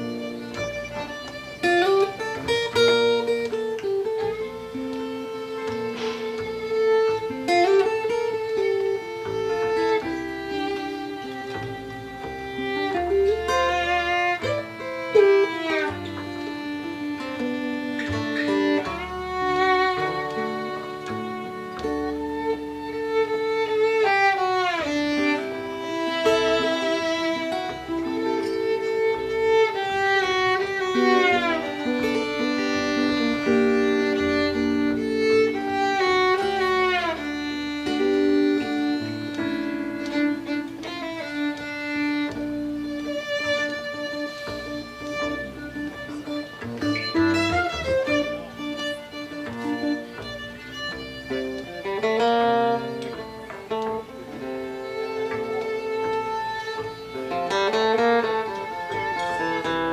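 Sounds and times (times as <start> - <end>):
strummed acoustic guitar: 0.0 - 59.9
violin melody with sliding notes: 0.0 - 59.9.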